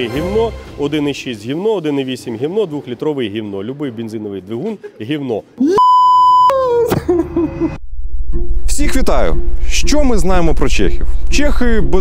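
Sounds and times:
man's voice: 0.0s - 4.7s
censor bleep: 5.8s - 6.6s.

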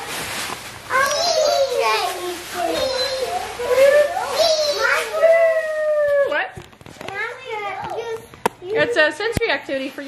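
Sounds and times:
child babbling and squealing: 2.6s - 5.3s.

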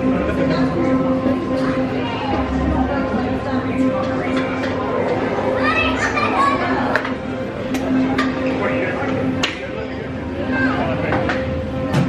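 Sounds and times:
background chatter: 0.0s - 12.0s
child's high voice: 5.5s - 7.0s.

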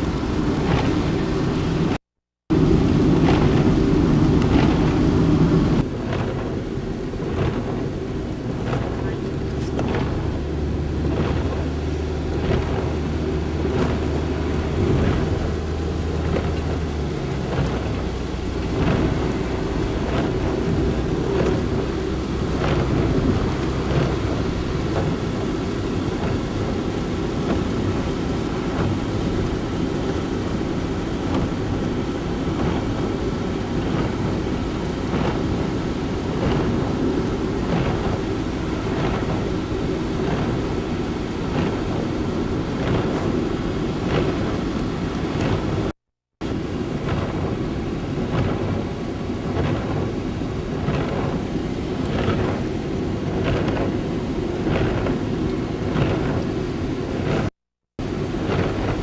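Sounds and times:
car engine: 0.0s - 59.0s
rain hitting car windshield: 0.0s - 59.0s
tyres rumbling on wet road: 0.0s - 59.0s.

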